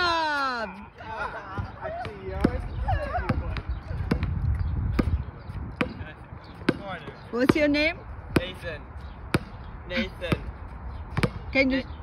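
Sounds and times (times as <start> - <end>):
basketball bouncing on court: 1.6 - 8.6, 9.3 - 9.6, 11.1 - 11.7.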